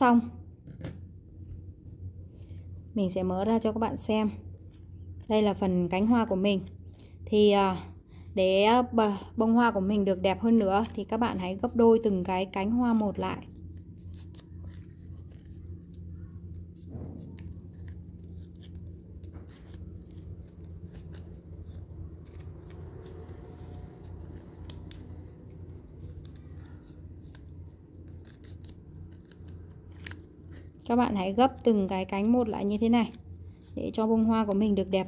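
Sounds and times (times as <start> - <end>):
steady low hum: 0.0 - 35.0
paper folding crackles: 2.4 - 7.3, 9.6 - 35.0.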